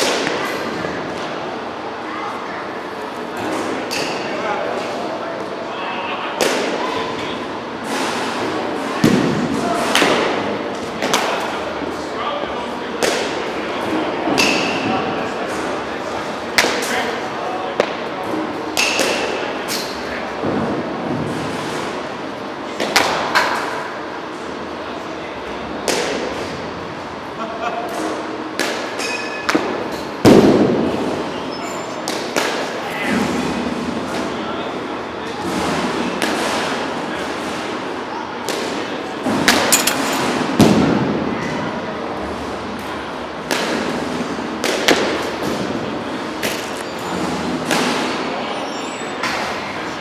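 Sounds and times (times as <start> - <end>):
bats cracking baseballs: 0.0 - 1.4, 6.4 - 6.8, 12.9 - 13.6, 17.7 - 20.0, 22.7 - 24.0, 25.8 - 26.7, 27.9 - 31.3, 32.0 - 34.3, 35.4 - 41.2, 43.3 - 48.3
balls striking screen and netting: 7.8 - 11.6, 12.9 - 15.7, 17.8 - 22.0, 28.0 - 31.3, 31.9 - 34.3, 38.4 - 41.2, 43.4 - 48.4.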